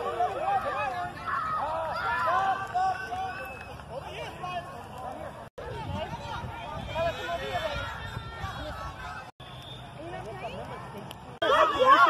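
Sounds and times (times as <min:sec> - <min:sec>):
background chatter: 0:00.0 - 0:12.0
voices talking and calling out: 0:00.0 - 0:12.0.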